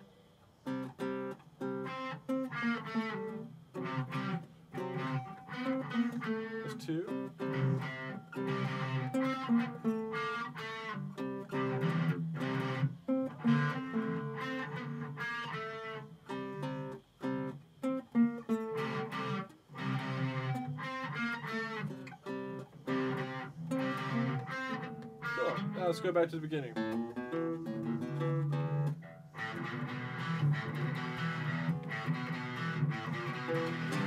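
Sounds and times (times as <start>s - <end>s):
acoustic guitar strumming chords: 0.0s - 34.0s
electric guitar strumming chords: 0.0s - 34.0s.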